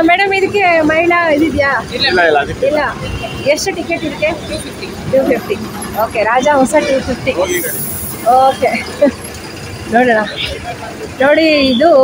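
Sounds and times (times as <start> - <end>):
buses idling: 0.0 - 12.0
people talking: 0.0 - 12.0.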